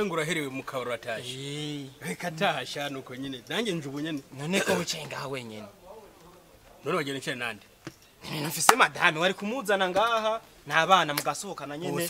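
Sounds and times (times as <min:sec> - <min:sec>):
man talking: 0:00.0 - 0:07.6, 0:08.3 - 0:12.0.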